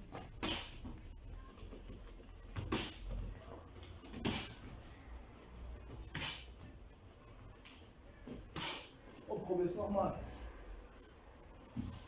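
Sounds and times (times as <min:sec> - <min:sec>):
short hissing bursts: 0:08.6 - 0:09.0.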